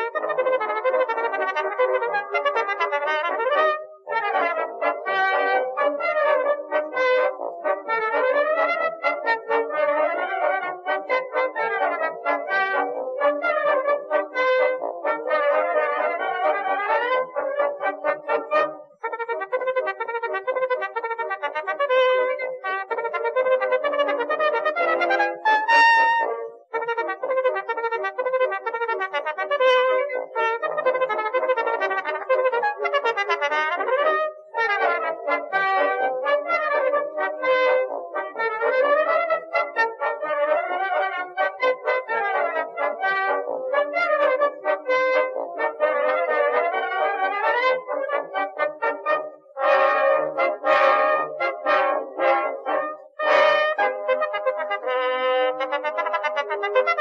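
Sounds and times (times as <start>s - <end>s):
brass melody on old recording: 0.0s - 57.0s.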